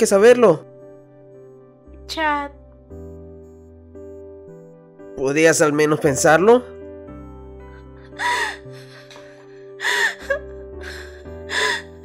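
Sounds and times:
soft background music: 0.0 - 12.0
person sobbing: 7.8 - 12.0.

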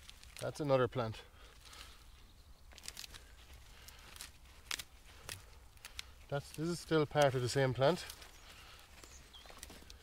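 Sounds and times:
roots crackling and snapping: 0.0 - 10.0
rustling in compost: 0.0 - 10.0.

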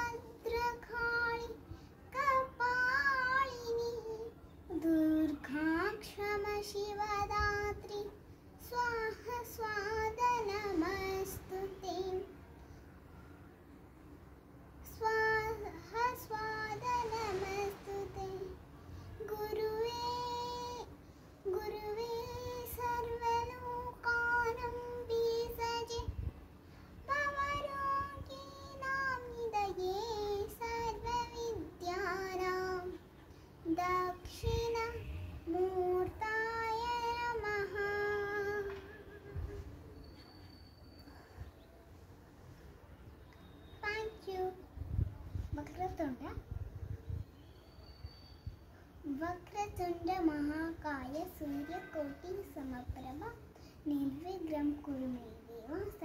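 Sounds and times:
girl chanting melodically: 43.7 - 46.8, 49.0 - 56.0.

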